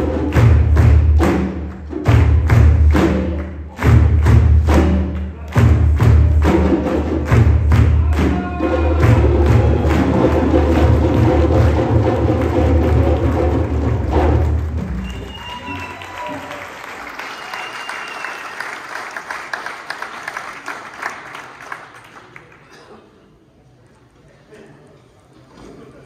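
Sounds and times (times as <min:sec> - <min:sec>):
hand drums playing a rhythm: 0:00.0 - 0:15.0.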